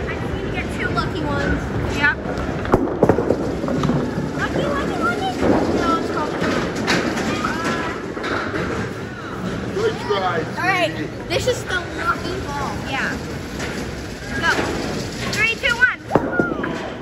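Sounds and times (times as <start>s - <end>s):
bowling ball rolling on wooden lane: 0.8s - 9.8s, 11.2s - 17.0s
chatter of voices: 3.6s - 17.0s.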